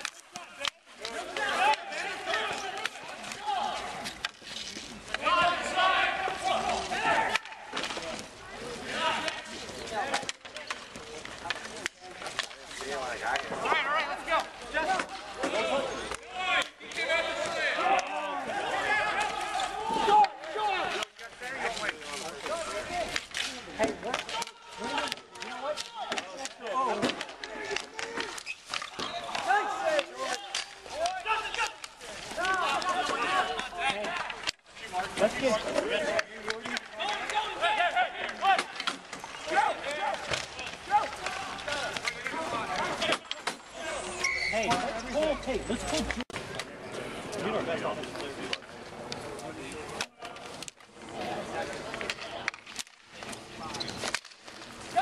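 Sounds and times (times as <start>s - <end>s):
hockey sticks clacking on ball: 0.0s - 55.0s
players calling out: 0.0s - 55.0s.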